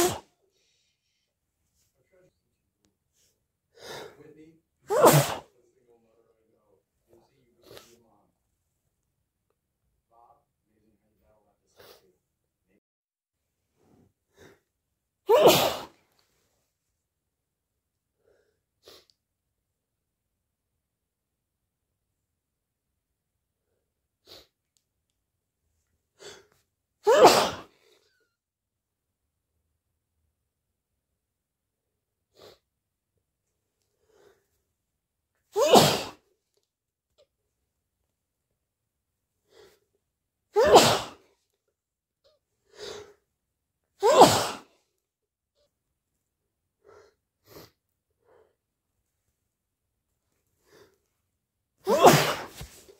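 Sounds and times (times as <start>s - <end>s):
person sneezing: 0.0s - 0.3s, 4.9s - 5.5s, 15.3s - 16.0s, 27.0s - 28.0s, 35.5s - 36.2s, 40.6s - 41.3s, 44.0s - 44.7s, 51.8s - 52.9s.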